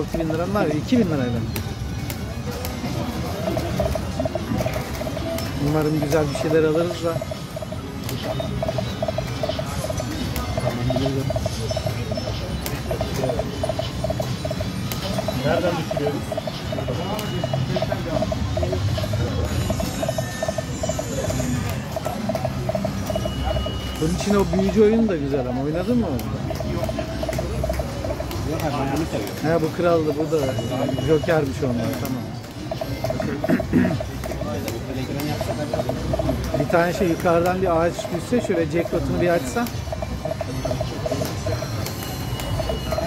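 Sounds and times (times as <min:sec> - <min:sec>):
low casino hum: 0:00.0 - 0:43.0
short electronic beeps: 0:03.4 - 0:25.6, 0:29.5 - 0:34.5, 0:37.8 - 0:43.0.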